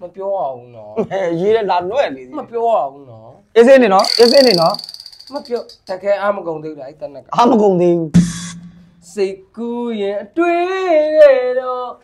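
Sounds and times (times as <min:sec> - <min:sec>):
high steady chirring tone: 0:04.0 - 0:06.0.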